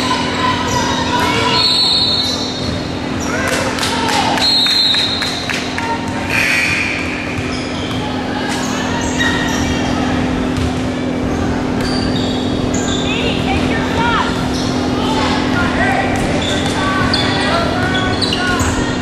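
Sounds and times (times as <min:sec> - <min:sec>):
sneakers squeaking: 0:00.0 - 0:19.0
voices echoing: 0:00.0 - 0:19.0
steady low hum: 0:05.4 - 0:19.0.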